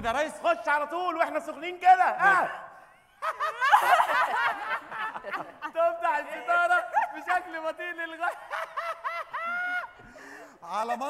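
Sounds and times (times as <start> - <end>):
men laughing: 3.0 - 10.6.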